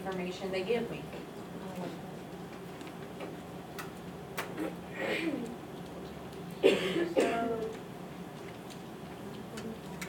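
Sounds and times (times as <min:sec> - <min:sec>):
room hum: 0:00.0 - 0:10.0.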